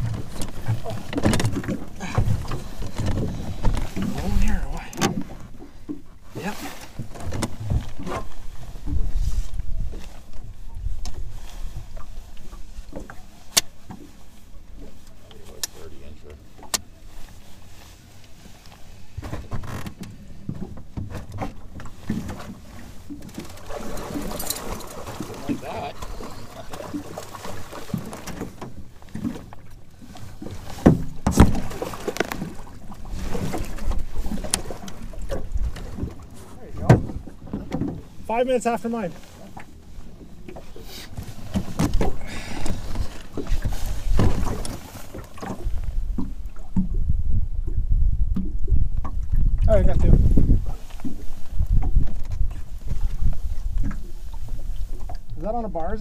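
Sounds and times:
gear clicking on boat: 0.0s - 56.0s
water splashing around boat: 0.0s - 56.0s
wind rumble on microphone: 6.3s - 13.2s, 27.8s - 38.2s, 41.2s - 56.0s.

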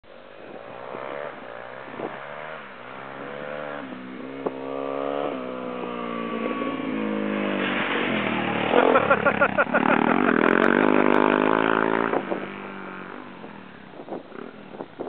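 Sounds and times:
motorcycle engine revving: 0.4s - 15.0s.

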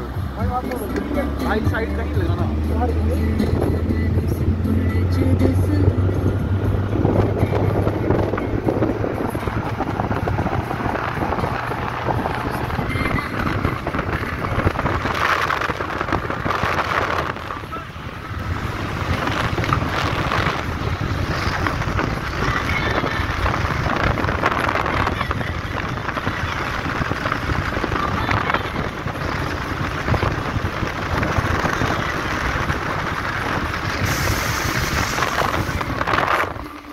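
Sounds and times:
car road noise from inside: 0.0s - 36.9s
music playing: 0.0s - 36.9s
wind buffeting microphone: 0.0s - 36.9s.

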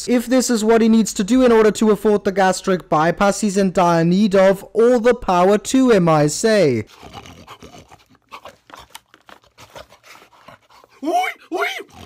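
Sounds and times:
chewing and slurping: 6.9s - 12.0s.

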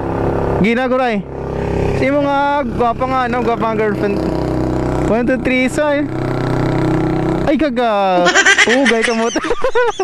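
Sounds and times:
motorcycle engine rumbling: 0.0s - 10.0s
voices talking and calling out: 7.9s - 9.8s.

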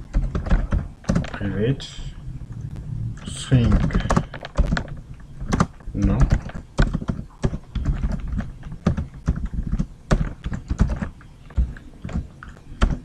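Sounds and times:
keyboard typing clicks: 3.2s - 13.0s.

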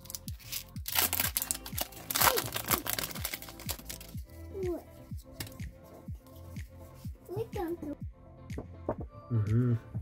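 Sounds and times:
foil wrapper crinkling and tearing: 0.0s - 4.2s
background music with steady beat: 0.0s - 10.0s.

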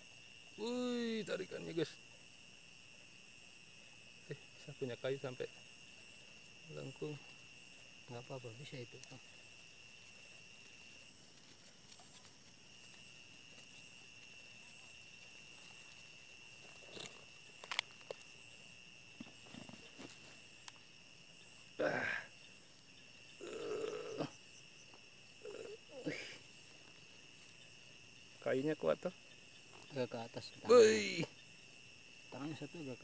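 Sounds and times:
crickets chirring: 0.0s - 33.0s.

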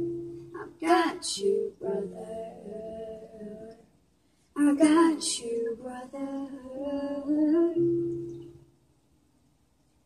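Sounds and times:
young woman singing: 0.0s - 4.0s, 4.6s - 8.6s.

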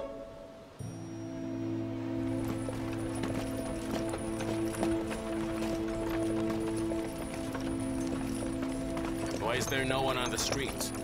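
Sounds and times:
background music with held notes: 0.0s - 11.0s
horses' hooves clip-clopping: 2.2s - 11.0s.

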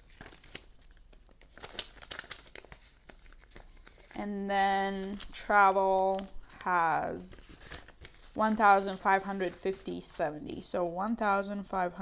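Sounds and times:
plastic sleeve crinkling: 0.0s - 4.2s, 5.0s - 9.7s
banknotes rustling: 0.0s - 10.7s.

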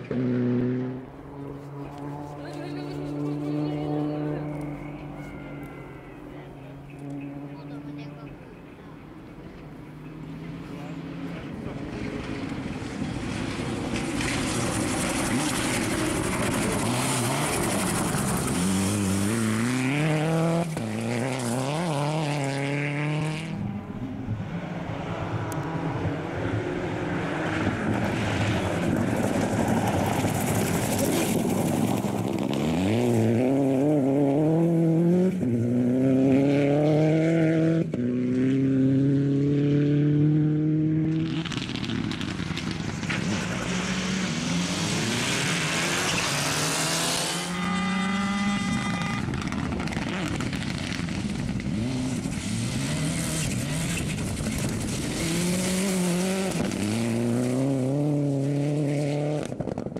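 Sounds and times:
rally car engine revving: 0.0s - 59.9s
tyres rushing on gravel: 28.5s - 33.2s.

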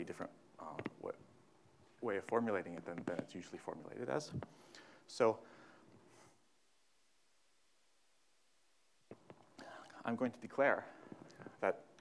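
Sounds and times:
man speaking: 0.0s - 1.3s, 2.0s - 4.5s, 5.1s - 5.5s, 9.6s - 12.0s.

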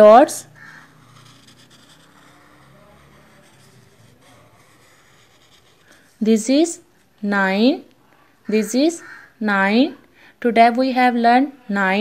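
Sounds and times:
marker drawing on paper: 0.0s - 6.7s.

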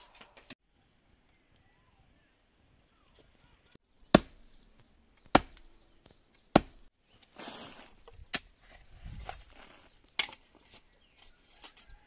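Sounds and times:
shovel chopping into earth: 5.2s - 5.7s, 6.5s - 10.5s.

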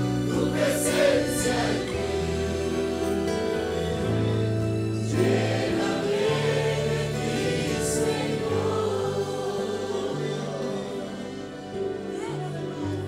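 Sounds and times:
congregation singing: 0.0s - 13.0s
sustained instrumental chords: 0.0s - 13.0s.

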